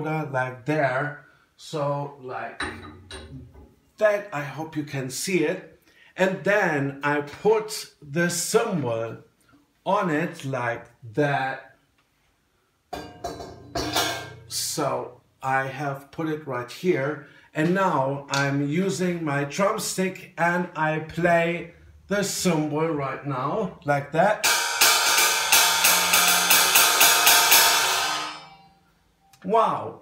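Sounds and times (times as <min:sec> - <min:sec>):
cymbal knocking on stand: 0:02.6 - 0:03.8, 0:13.0 - 0:14.5, 0:24.4 - 0:28.6
metal plate rattling: 0:02.6 - 0:03.9, 0:13.0 - 0:14.5, 0:24.5 - 0:28.5
crash cymbal ringing: 0:13.0 - 0:14.6, 0:24.4 - 0:28.8.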